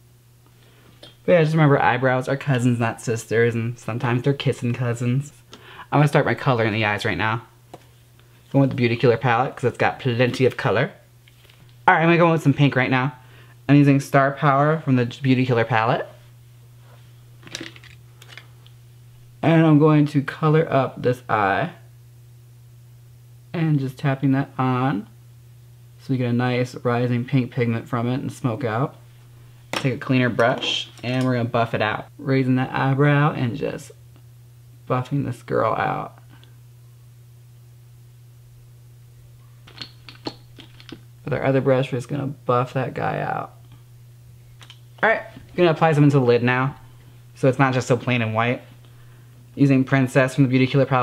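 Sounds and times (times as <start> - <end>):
faint low hum: 0.0 - 51.0
makeup tools clicking and tapping: 39.7 - 41.0.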